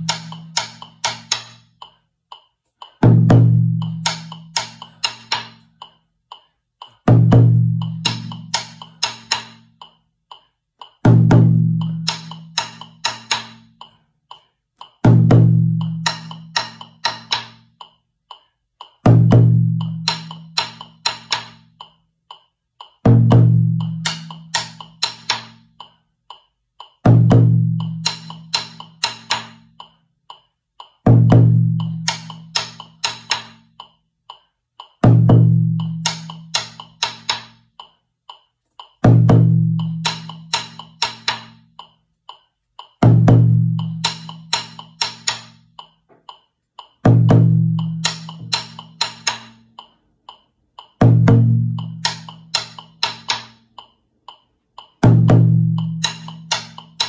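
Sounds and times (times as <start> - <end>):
metronome clicking: 0.0 - 57.0
bass drum struck with sticks: 2.9 - 5.6, 7.0 - 9.7, 11.0 - 13.7, 15.0 - 17.7, 19.0 - 21.6, 23.0 - 25.6, 27.0 - 29.6, 31.0 - 33.6, 35.0 - 37.5, 39.0 - 41.6, 43.0 - 45.6, 47.0 - 49.6, 51.0 - 53.4, 55.0 - 57.0.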